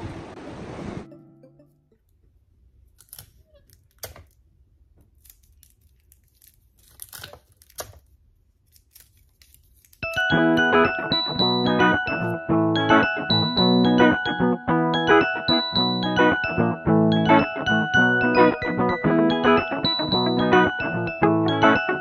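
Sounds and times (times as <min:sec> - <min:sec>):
plastic wrap crinkling: 0:02.9 - 0:10.2.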